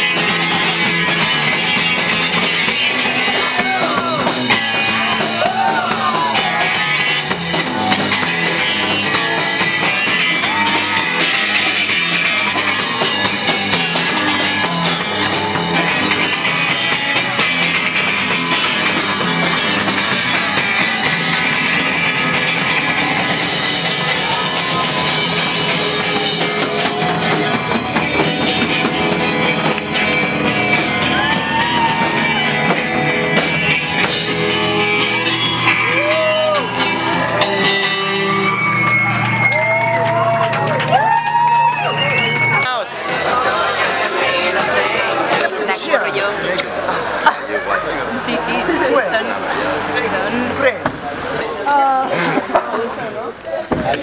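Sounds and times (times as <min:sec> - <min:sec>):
rock music with electric guitars: 0:00.0 - 0:50.6.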